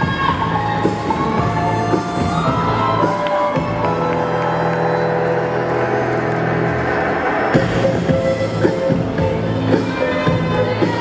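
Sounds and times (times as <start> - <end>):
crowd noise: 0.0 - 11.0
music over sound system: 0.0 - 11.0.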